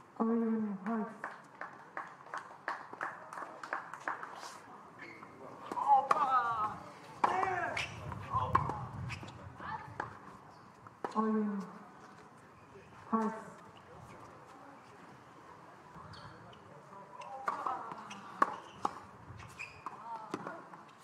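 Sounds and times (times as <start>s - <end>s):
voices: 3.3s - 21.0s
tennis ball bouncing on hard court: 5.7s - 9.2s, 17.2s - 20.6s.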